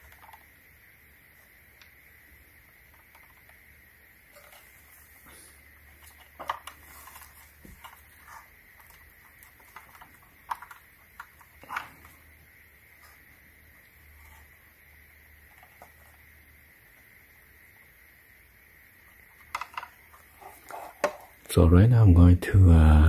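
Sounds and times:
faint steady hum: 0:00.0 - 0:23.0.

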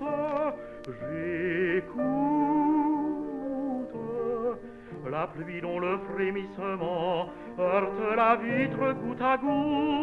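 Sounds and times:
soft piano accompaniment: 0:00.0 - 0:10.0
tenor singing with vibrato: 0:00.0 - 0:10.0.

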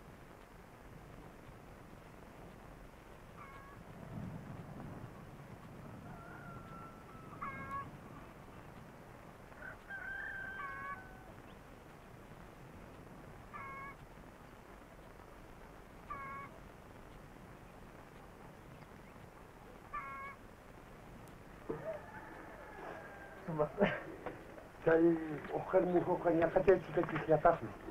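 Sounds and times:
faint background noise: 0:00.0 - 0:27.9
short animal calls: 0:03.4 - 0:03.8, 0:13.5 - 0:14.0, 0:16.1 - 0:16.6, 0:19.9 - 0:20.4.

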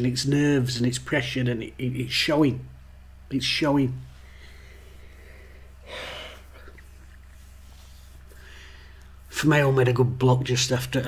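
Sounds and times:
steady low hum: 0:00.0 - 0:11.0
short breath: 0:04.2 - 0:06.8, 0:07.9 - 0:09.2.

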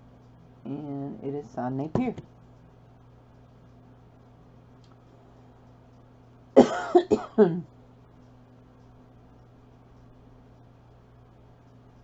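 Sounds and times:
woman coughing: 0:06.6 - 0:07.7.

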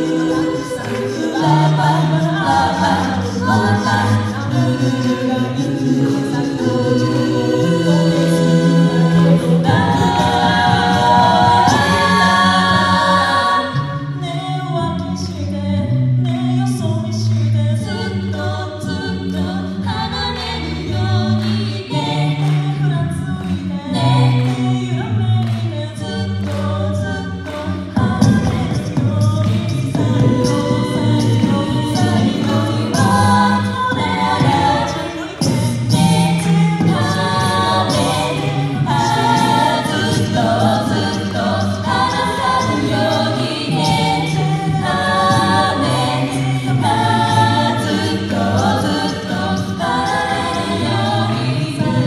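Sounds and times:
a cappella group singing: 0:00.0 - 0:52.0
vocal percussion beat: 0:00.0 - 0:52.0.

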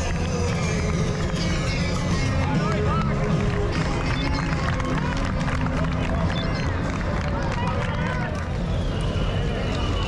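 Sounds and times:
spectators' voices and calls: 0:00.0 - 0:10.0.

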